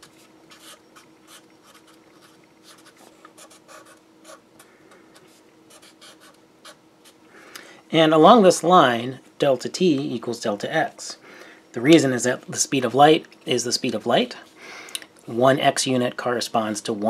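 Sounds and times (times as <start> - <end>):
marker pen scratching on paper: 0.0 - 4.4, 5.1 - 7.2
faint steady hum: 0.0 - 17.0.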